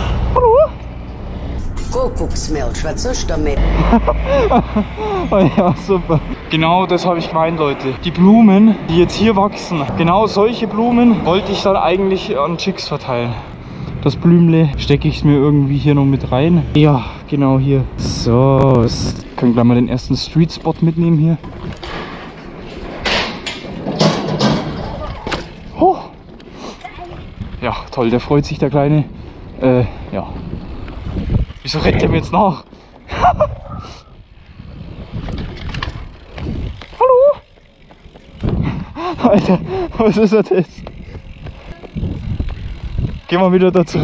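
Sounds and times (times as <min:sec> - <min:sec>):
bike tyre noise and rattling: 0:00.0 - 0:44.0
wind rumble on microphone: 0:17.8 - 0:20.8, 0:28.5 - 0:32.4, 0:33.1 - 0:37.4, 0:38.3 - 0:40.0, 0:40.7 - 0:43.3
wheels knocking on grate edges: 0:21.4 - 0:25.6.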